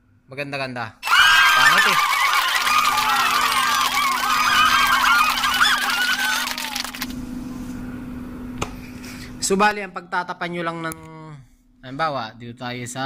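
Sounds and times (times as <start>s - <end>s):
steady low hum: 1.7s - 13.0s.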